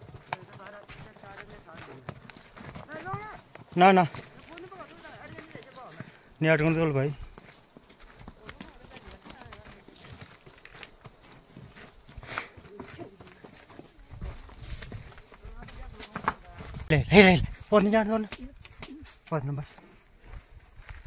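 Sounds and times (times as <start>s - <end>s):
hooves on stony path: 0.0s - 21.0s.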